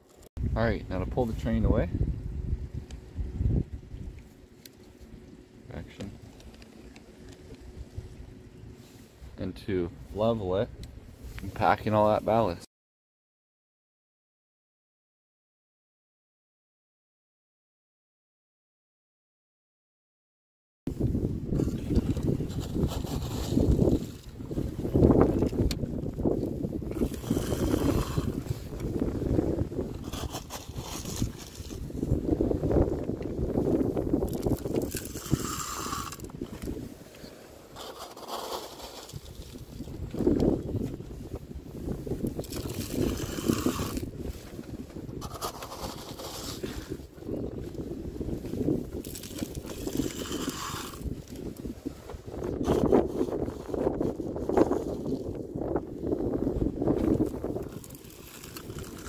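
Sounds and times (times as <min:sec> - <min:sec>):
wind buffeting microphone: 0:00.4 - 0:12.5, 0:20.9 - 0:59.0
gravel scraping and pouring: 0:21.5 - 0:40.8, 0:42.2 - 0:47.1, 0:47.8 - 0:52.0, 0:56.8 - 0:59.0.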